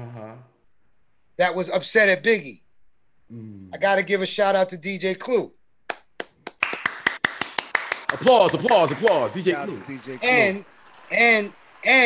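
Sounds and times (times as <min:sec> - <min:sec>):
hands clapping: 0:05.8 - 0:12.0.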